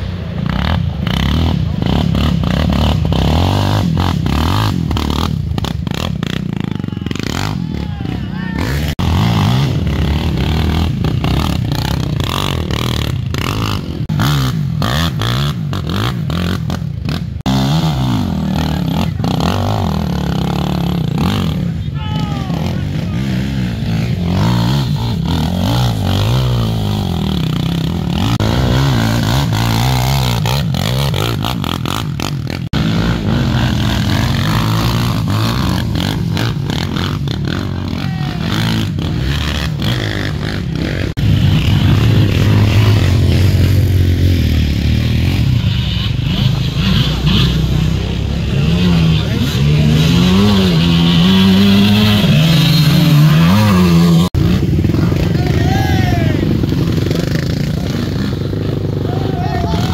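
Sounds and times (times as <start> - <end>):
quad bike engines revving: 0.0 - 59.9.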